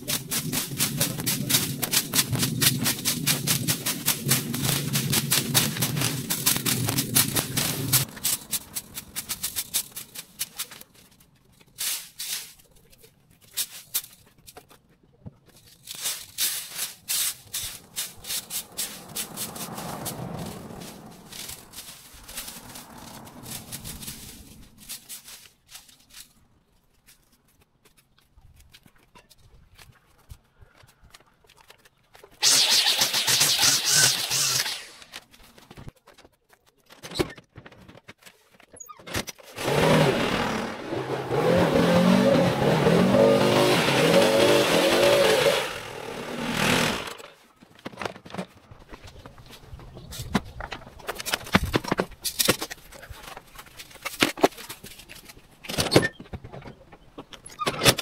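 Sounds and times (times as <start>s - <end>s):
rake scraping over concrete: 0.0s - 14.7s, 15.5s - 26.4s, 32.4s - 35.6s, 39.4s - 47.6s
leaf blower engine revving: 32.4s - 35.1s, 39.6s - 47.3s
string trimmer cutting grass: 32.4s - 35.2s, 39.6s - 47.4s.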